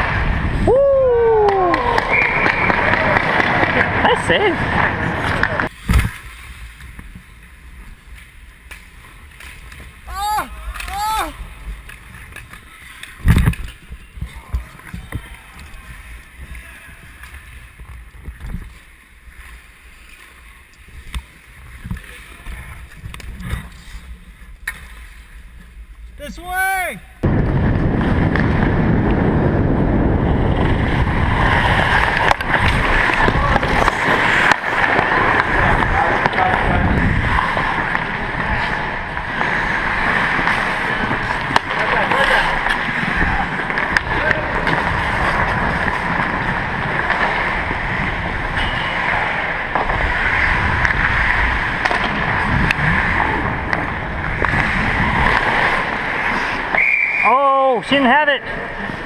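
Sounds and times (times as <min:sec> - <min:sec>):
skates scraping on ice: 0:00.0 - 0:00.7, 0:01.4 - 0:59.0
wind rushing over microphone: 0:00.0 - 0:07.3, 0:27.2 - 0:56.7.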